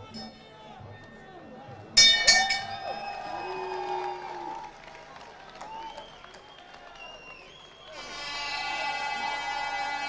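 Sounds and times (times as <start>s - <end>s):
crowd shouting and cheering: 0.0s - 10.0s
boxing bell ringing: 2.0s - 3.2s.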